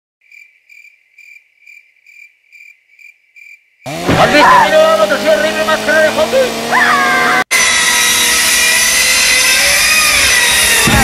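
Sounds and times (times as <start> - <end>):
cricket chirping: 0.2 - 3.9
loud burst of sound: 9.8 - 11.0.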